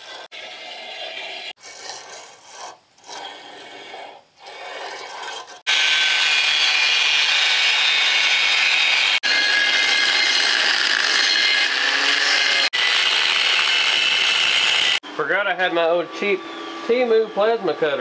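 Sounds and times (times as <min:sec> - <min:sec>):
angle grinder cutting metal: 0:00.0 - 0:01.9, 0:03.0 - 0:15.0
scribe scratching steel: 0:00.0 - 0:15.0.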